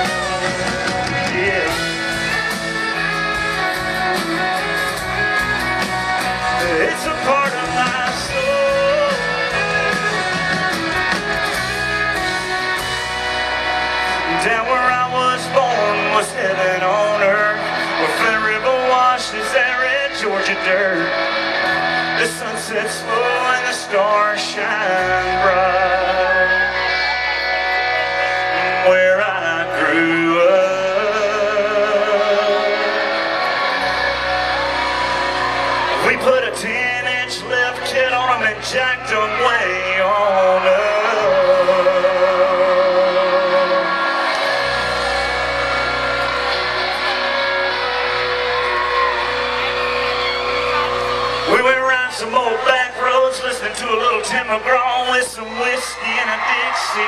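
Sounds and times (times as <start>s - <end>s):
crowd shouting: 0.0s - 57.0s
guitar: 0.0s - 57.0s
live country band playing: 0.0s - 57.0s.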